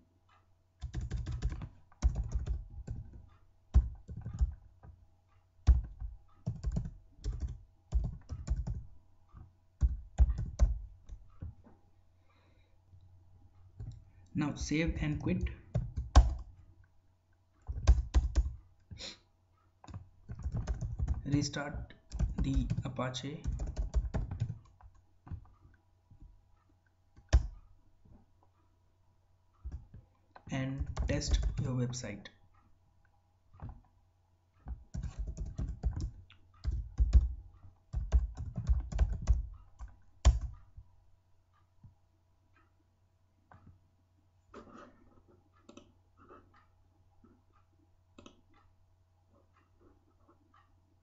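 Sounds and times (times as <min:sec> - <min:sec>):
computer keyboard typing: 0:00.8 - 0:05.0, 0:05.6 - 0:11.5, 0:14.9 - 0:16.6, 0:17.6 - 0:18.6, 0:19.8 - 0:25.6, 0:27.2 - 0:27.7, 0:29.7 - 0:32.0, 0:34.6 - 0:40.6.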